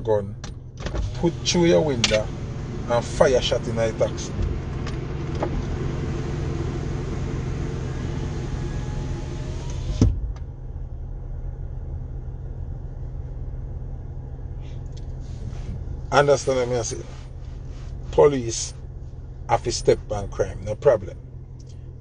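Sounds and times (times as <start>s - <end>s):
car cabin hum: 0.0s - 22.0s.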